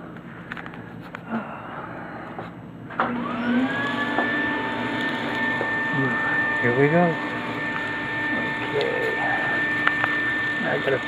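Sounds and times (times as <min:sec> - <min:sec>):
insulation blower whine: 0:00.0 - 0:11.0.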